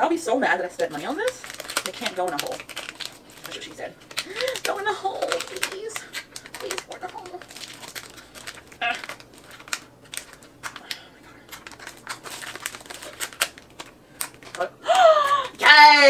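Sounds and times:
plastic packaging crinkling: 0.0s - 15.5s.

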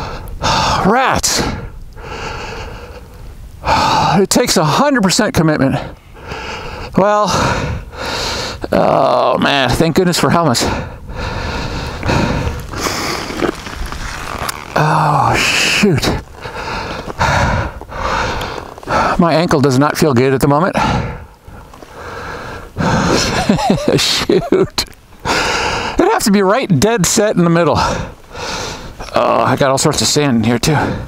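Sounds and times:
man breathing hard: 0.0s - 4.2s, 5.8s - 8.7s, 10.6s - 13.5s, 16.1s - 19.2s, 20.8s - 23.4s, 25.2s - 26.0s, 27.8s - 29.1s, 30.7s - 31.0s.

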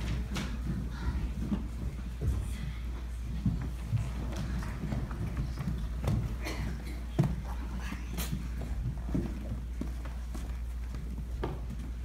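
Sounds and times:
footsteps and shuffling: 0.0s - 12.0s
steady low hum: 0.0s - 12.0s.

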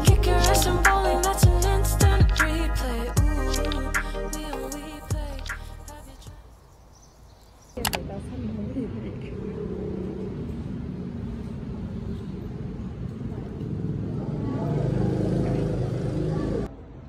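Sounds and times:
indistinct voices: 7.8s - 16.7s.

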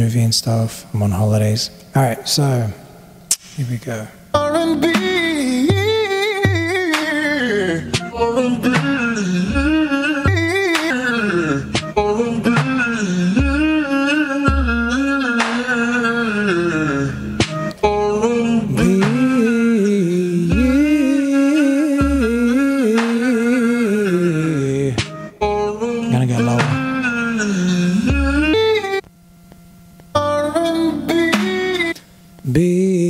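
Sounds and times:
man singing vocal runs: 4.0s - 29.0s, 30.2s - 33.0s.

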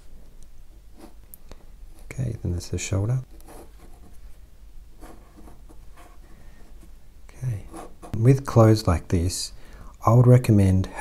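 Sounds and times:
pen nib scratching on paper: 7.6s - 8.2s.

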